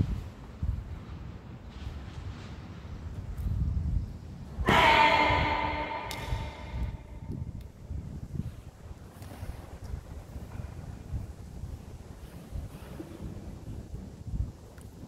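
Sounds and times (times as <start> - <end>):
sharp shout echoing: 4.6 - 7.4.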